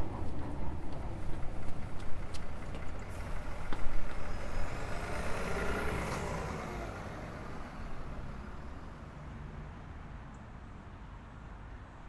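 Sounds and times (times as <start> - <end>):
vehicle passing: 0.0 - 9.3.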